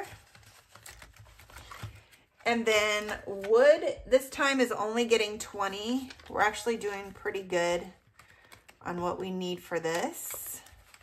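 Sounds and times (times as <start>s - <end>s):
plastic pages rustling: 0.0s - 11.0s.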